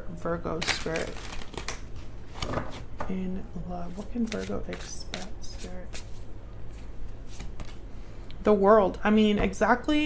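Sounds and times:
cards being shuffled: 4.0 - 7.8.

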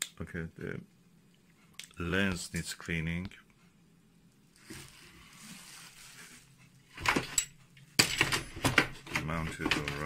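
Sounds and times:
bubble wrap crackling: 4.5 - 6.6.

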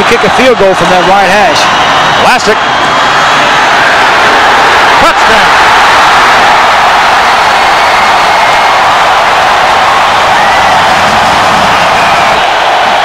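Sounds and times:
stadium crowd cheering: 0.0 - 13.0.

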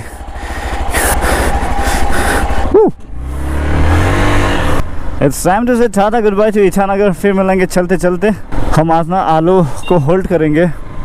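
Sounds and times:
motorcycle engine pulsing: 0.0 - 3.2
rising and falling tone: 0.0 - 4.8.

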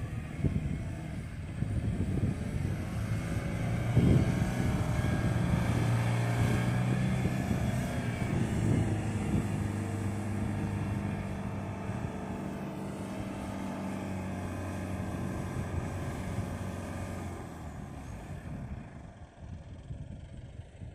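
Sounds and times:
truck engine running under load: 0.0 - 20.9.

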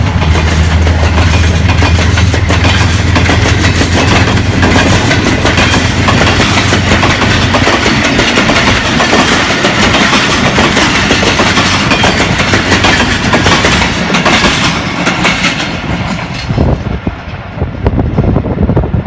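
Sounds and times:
train wheels clattering: 0.0 - 17.5
diesel locomotive drone: 0.0 - 19.0.

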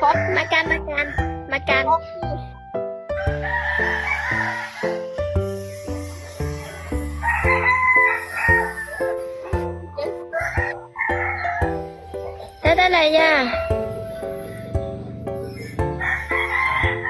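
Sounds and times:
background music with stepping melody: 0.0 - 17.0
rooster crowing: 3.2 - 5.2, 7.0 - 9.3, 10.3 - 12.0, 15.4 - 17.0.

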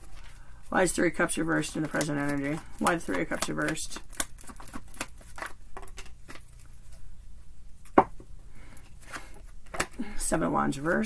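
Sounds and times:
cards being shuffled: 0.0 - 7.0.

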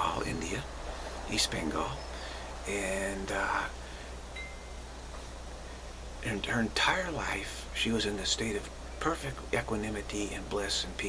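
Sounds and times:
steady low hum: 0.0 - 11.0
faint high ringing tone: 4.3 - 5.1.

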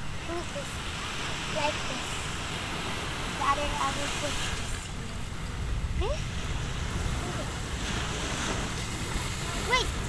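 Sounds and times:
surf on the beach: 0.0 - 10.0
wind rumbling on microphone: 0.0 - 10.0.

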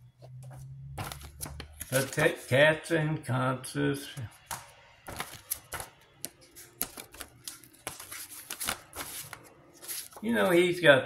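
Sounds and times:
paper rustling: 1.0 - 2.5, 4.4 - 10.6.

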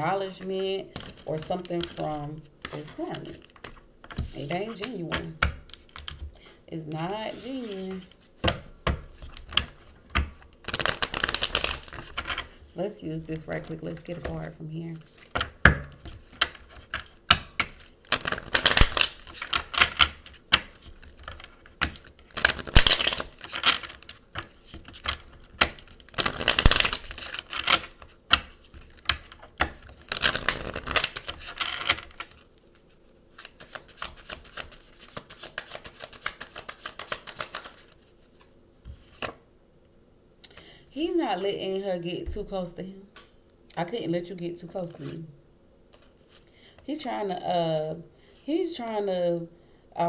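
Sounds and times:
cards being shuffled: 0.3 - 6.4, 7.3 - 39.4.

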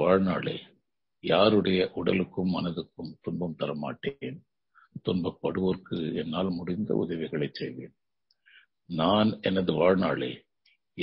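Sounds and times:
man speaking: 0.0 - 8.0, 8.8 - 11.0.

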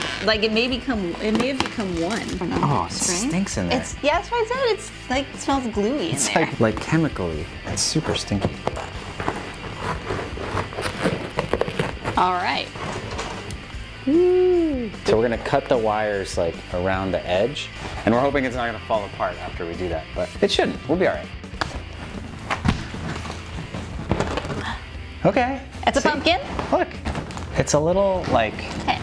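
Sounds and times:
stiff paper rustling: 8.1 - 13.4, 22.0 - 24.7.

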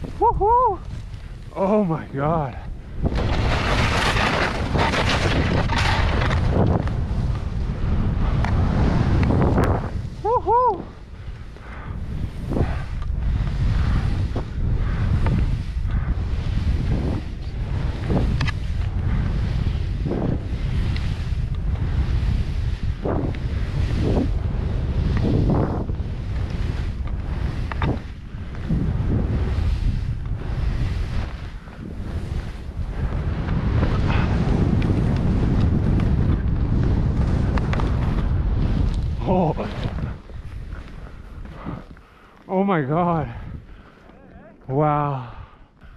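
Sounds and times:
skis scraping through snow: 0.0 - 44.6
wind buffeting microphone: 0.0 - 45.9
person whooping: 0.1 - 0.9, 10.2 - 11.0.

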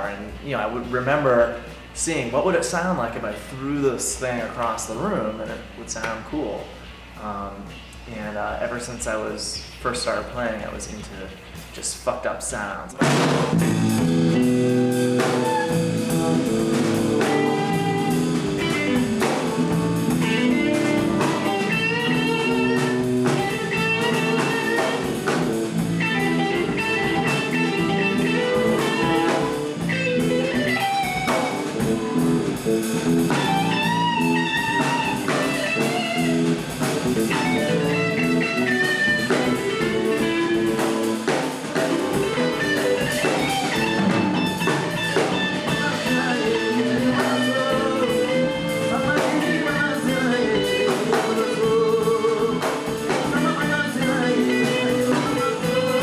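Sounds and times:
drum kit: 0.0 - 56.0
electric bass: 0.0 - 56.0
electric guitar: 13.0 - 56.0.

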